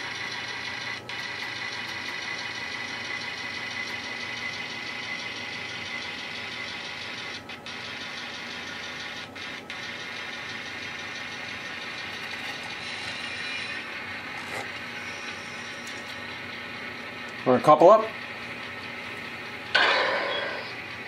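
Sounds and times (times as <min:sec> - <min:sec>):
model locomotive engine drone: 0:00.0 - 0:21.0.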